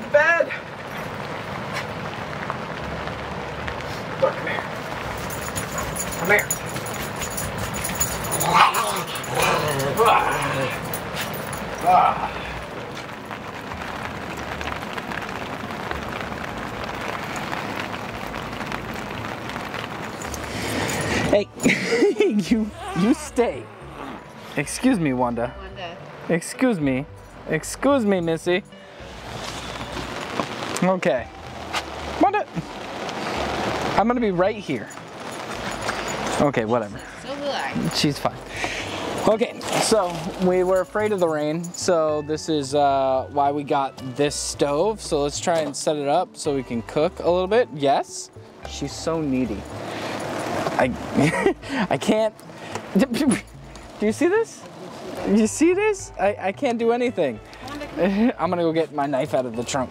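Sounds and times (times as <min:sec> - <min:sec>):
rain on a canvas roof: 0:00.0 - 0:59.9.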